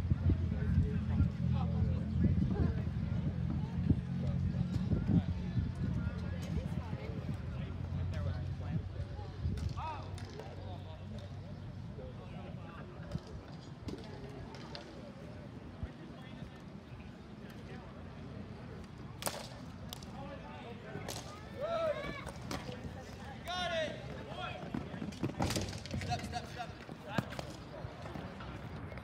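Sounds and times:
low background noise: 0.0s - 29.0s
players shouting: 20.9s - 24.7s.

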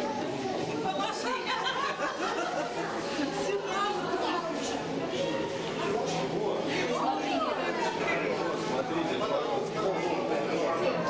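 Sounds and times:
chatter of many voices: 0.0s - 11.0s.

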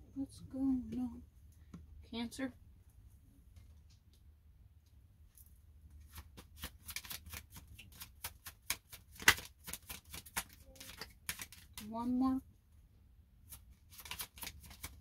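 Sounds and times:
cards being shuffled: 6.0s - 11.9s, 13.5s - 15.0s.

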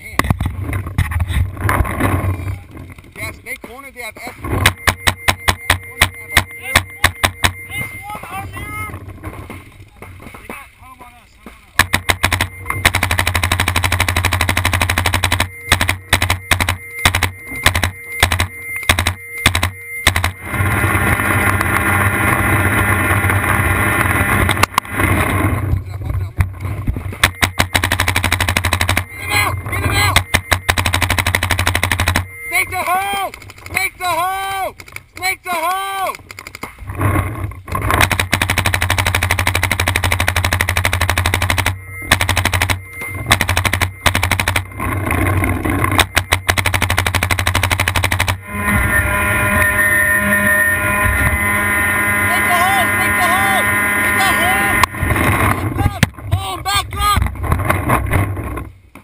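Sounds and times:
paintball markers firing: 11.8s - 20.4s, 27.2s - 29.1s, 30.1s - 32.3s, 37.8s - 44.7s, 45.9s - 48.4s.

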